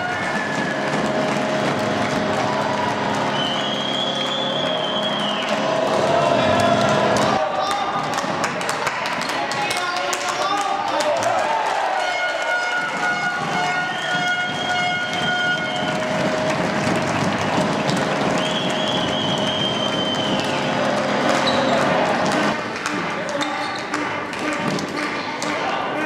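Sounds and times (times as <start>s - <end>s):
crowd cheering and shouting: 0.0s - 23.8s.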